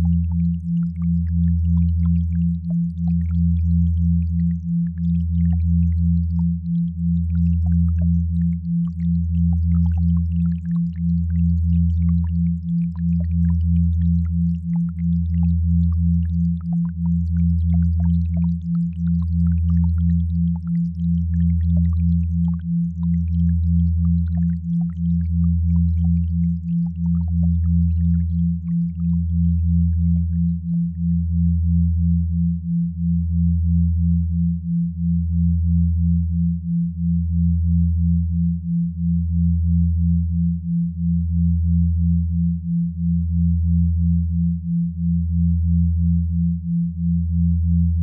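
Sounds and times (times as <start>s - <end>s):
deep steady sine hum: 0.0s - 48.0s.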